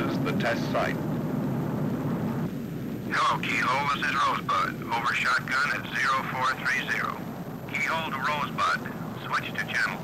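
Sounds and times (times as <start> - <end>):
propeller plane engines droning: 0.0 - 10.0.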